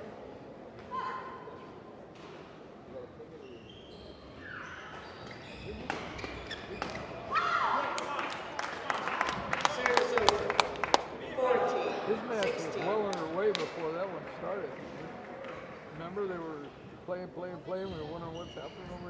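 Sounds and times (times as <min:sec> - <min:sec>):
shoe squeaks on court floor: 0:03.3 - 0:07.2, 0:17.7 - 0:19.0.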